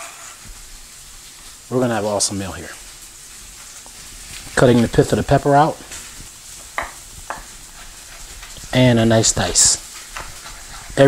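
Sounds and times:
fish sizzling in a pan: 0.0s - 11.0s.

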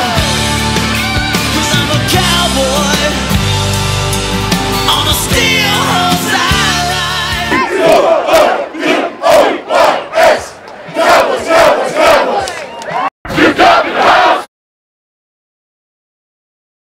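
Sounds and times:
men shouting in unison: 7.4s - 8.6s.

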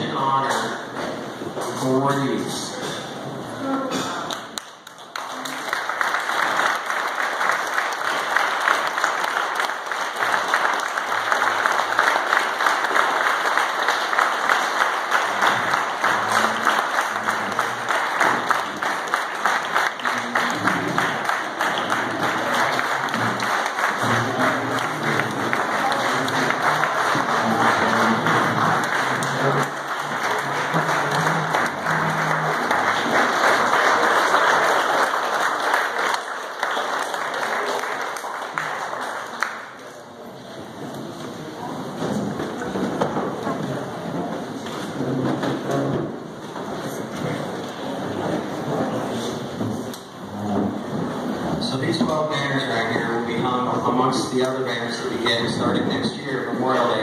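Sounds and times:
crowd applauding: 4.0s - 57.0s.

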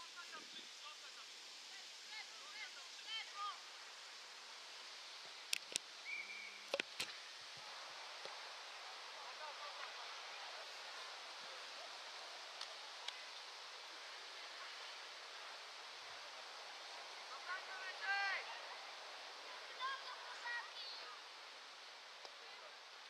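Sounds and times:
wind-like noise: 0.0s - 23.0s.

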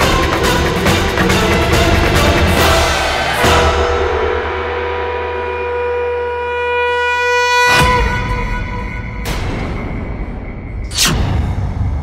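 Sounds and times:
sustained horn-like note: 2.2s - 9.5s.

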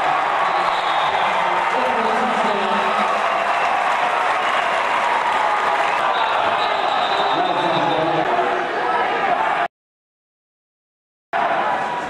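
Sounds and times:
crowd din of voices: 5.3s - 9.7s.

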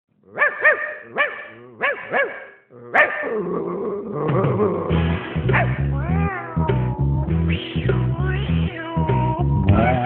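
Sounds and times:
music with repeating bass line: 5.0s - 10.0s
cat meowing: 5.9s - 7.3s.

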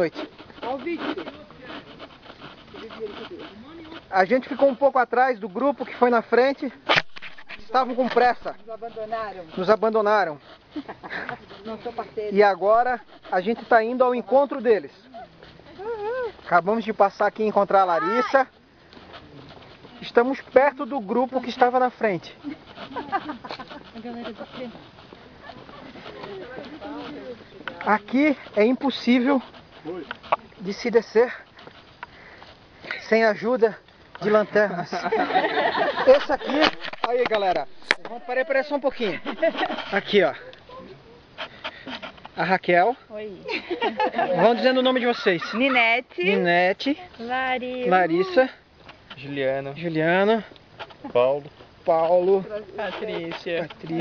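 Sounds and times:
crunching footsteps on trail: 0.0s - 43.9s
faint chatter of people: 22.3s - 28.6s.

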